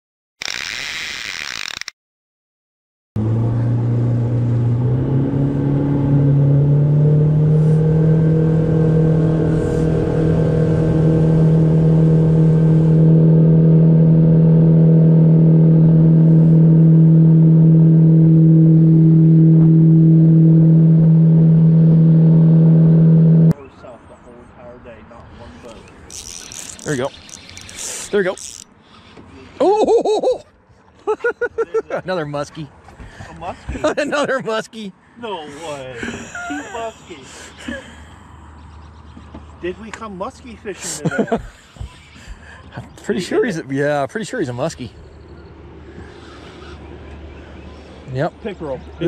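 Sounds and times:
boat engine running: 3.2 - 23.6.

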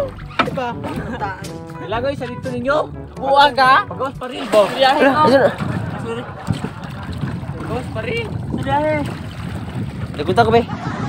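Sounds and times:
wind and water rushing: 3.5 - 11.0.

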